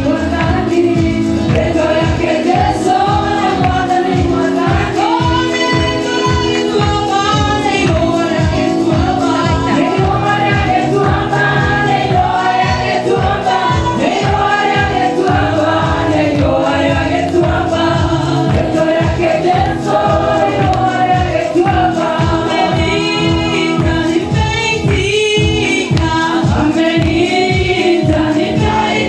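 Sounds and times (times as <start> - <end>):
group singing gospel music: 0.0 - 29.0
steady beat: 0.0 - 29.0.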